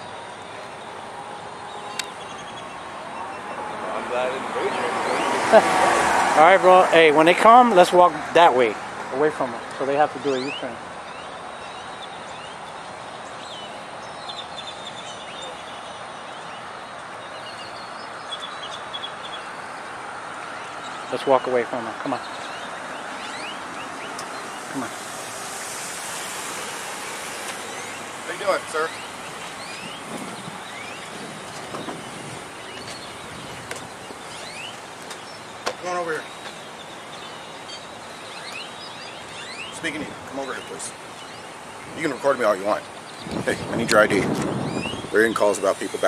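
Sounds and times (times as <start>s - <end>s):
birds chirping: 0.0s - 46.0s
car engine and tyres rolling: 0.0s - 46.0s
road traffic hum: 0.0s - 46.0s.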